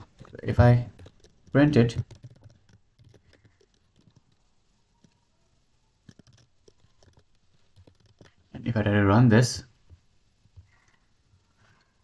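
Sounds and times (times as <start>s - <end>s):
faint keyboard keystrokes: 0.2s - 5.3s, 6.0s - 8.5s.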